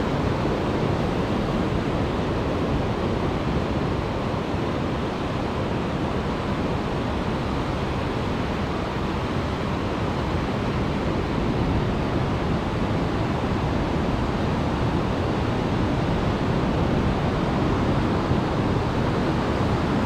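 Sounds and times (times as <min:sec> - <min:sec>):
wind rumbling on microphone: 0:00.0 - 0:20.0.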